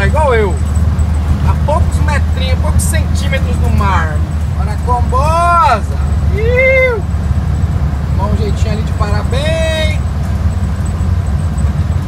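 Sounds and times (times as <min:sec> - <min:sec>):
van engine rumble from inside: 0:00.0 - 0:12.0.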